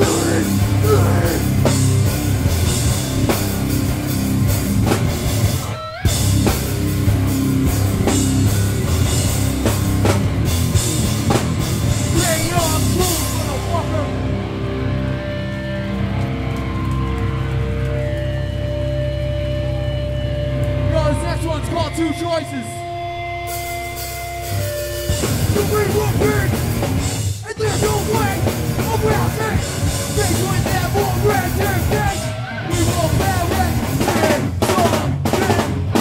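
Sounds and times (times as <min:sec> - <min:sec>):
drum kit: 0:00.0 - 0:15.7, 0:23.4 - 0:36.0
bass guitar: 0:00.0 - 0:36.0
distorted guitars: 0:00.0 - 0:36.0.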